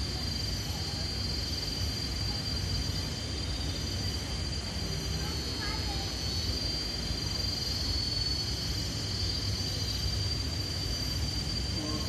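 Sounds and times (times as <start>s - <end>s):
high-pitched whine: 11.5s - 12.0s.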